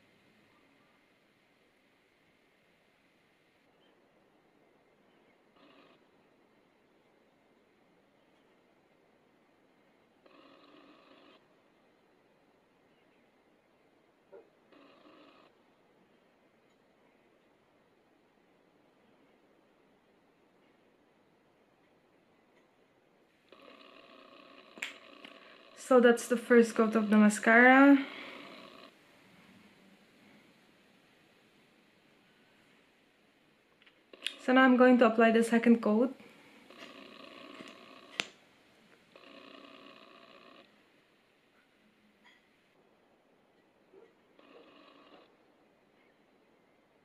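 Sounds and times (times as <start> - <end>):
faint room tone hum: 0.0 - 47.0.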